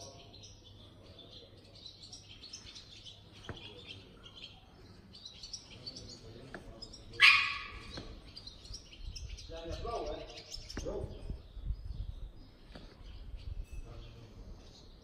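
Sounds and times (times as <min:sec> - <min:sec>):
loud sharp bird cry: 0:00.0 - 0:15.0
small birds chirping: 0:00.0 - 0:15.0.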